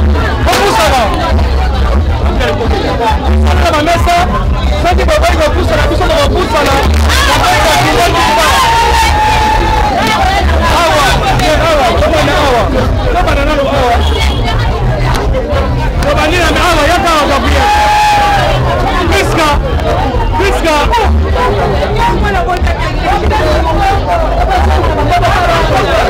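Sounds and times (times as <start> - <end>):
crowd voices calling: 0.0 - 26.0.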